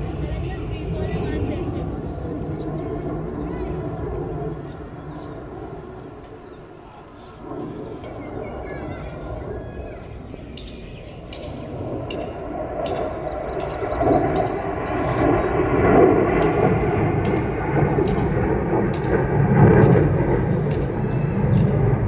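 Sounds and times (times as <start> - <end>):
jet engine roar: 0.0 - 22.0.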